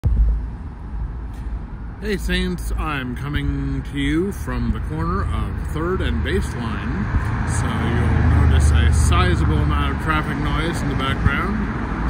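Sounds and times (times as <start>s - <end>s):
passing cars rumble: 0.0s - 12.0s.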